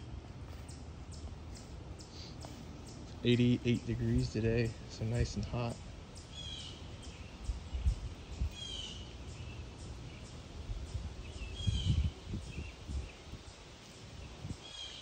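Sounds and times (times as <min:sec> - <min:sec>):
outdoor background noise: 0:00.0 - 0:15.0
low rumbles on microphone: 0:07.4 - 0:08.7, 0:10.7 - 0:13.4.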